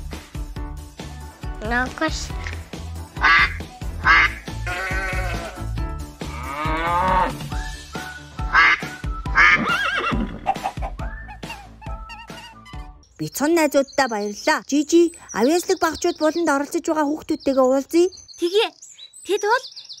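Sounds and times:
children's music with steady beat: 0.0s - 9.6s, 10.2s - 13.1s
duck quacks: 3.2s - 5.6s, 8.5s - 9.6s
livestock cries: 4.1s - 7.4s.

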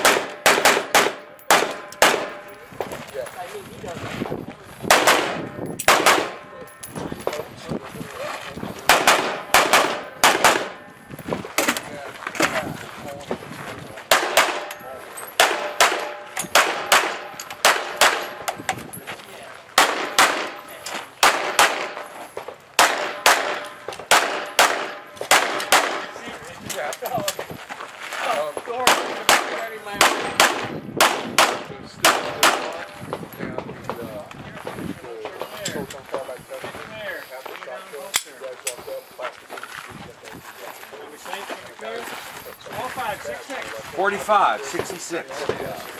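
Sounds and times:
rapid gunshots: 0.0s - 2.4s, 4.9s - 6.4s, 8.9s - 10.8s, 14.1s - 14.7s, 15.4s - 18.4s, 19.8s - 20.6s, 21.2s - 22.0s, 22.8s - 26.2s.

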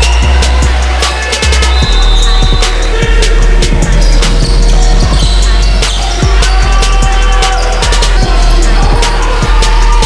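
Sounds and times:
electronic music with deep bass: 0.0s - 10.0s.

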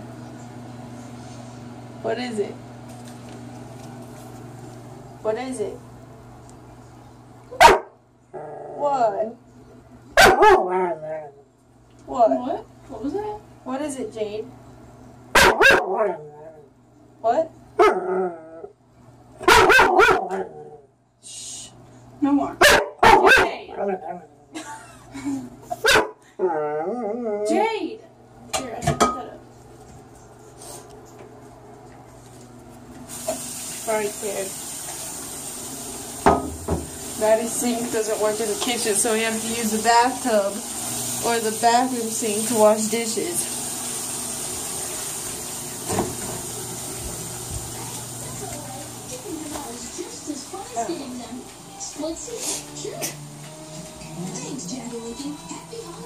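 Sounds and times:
dog barking: 7.5s - 8.0s, 10.2s - 11.0s, 15.3s - 16.2s, 17.8s - 18.0s, 19.4s - 20.5s, 22.6s - 23.6s, 25.8s - 26.2s
steady hiss: 33.0s - 51.2s.

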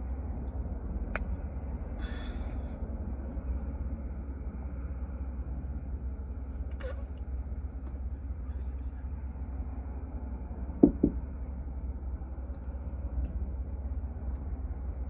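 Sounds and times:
car cabin engine rumble: 0.0s - 15.0s.

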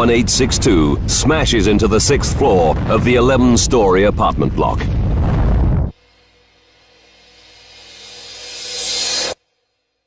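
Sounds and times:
faint sustained drone: 6.0s - 9.4s
rising hiss-like swell: 6.0s - 9.4s.

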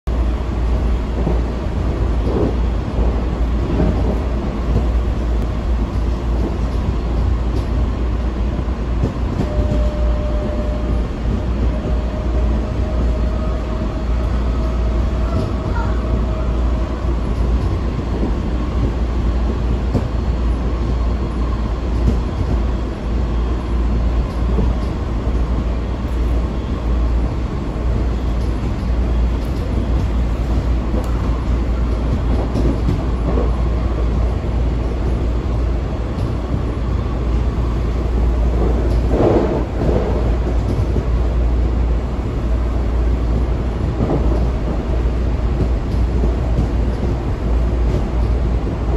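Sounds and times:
train wheels rumbling on rails: 0.1s - 48.9s.

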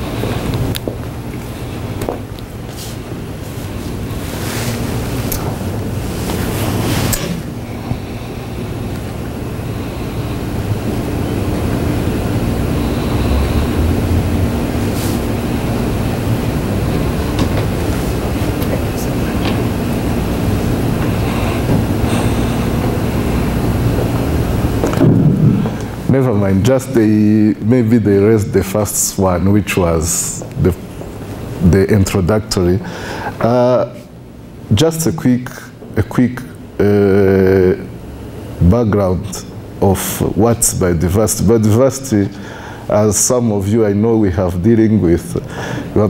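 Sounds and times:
faint steady hum: 0.0s - 46.0s
low rumbling noise: 0.0s - 46.0s.

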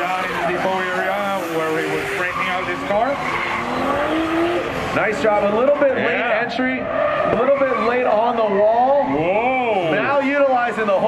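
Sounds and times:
tyres squealing while sliding: 0.0s - 4.4s
car engine revving: 0.0s - 11.0s.

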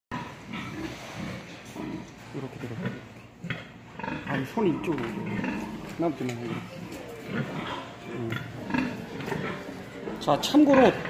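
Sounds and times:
pigs grunting: 0.1s - 11.0s.

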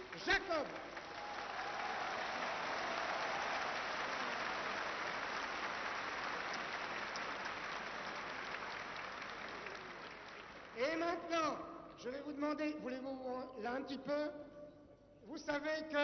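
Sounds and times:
audience applauding: 0.0s - 11.1s.

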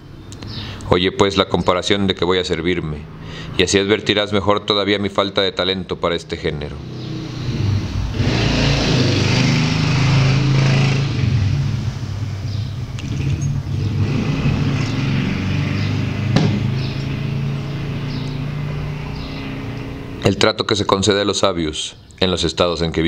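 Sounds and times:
broad rushing noise: 6.8s - 20.4s
vehicle engine running: 7.1s - 20.3s
sharp knock: 16.2s - 16.9s.

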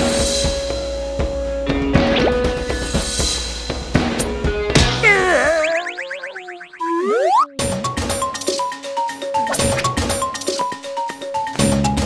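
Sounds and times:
wavering whistle-like tones: 5.0s - 7.6s
rising slide whistle glide: 5.4s - 7.6s.

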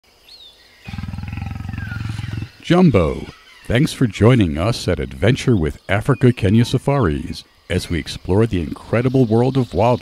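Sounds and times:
faint bird chirp: 0.1s - 10.0s
big cat growling: 0.9s - 2.6s.

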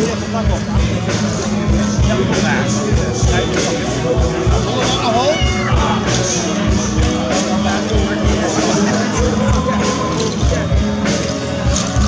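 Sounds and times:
band music with low beat: 0.0s - 12.0s.

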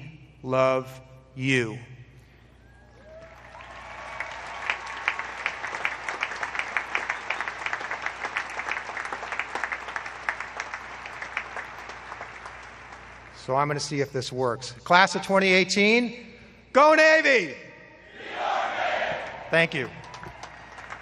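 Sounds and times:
crowd applauding: 3.0s - 13.4s, 19.1s - 21.0s.

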